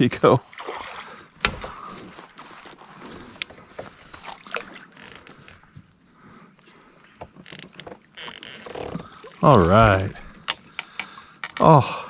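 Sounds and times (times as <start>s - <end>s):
fish thrashing water splashing: 0.5s - 2.0s, 4.0s - 4.9s
small clicks and knocks: 10.4s - 11.7s.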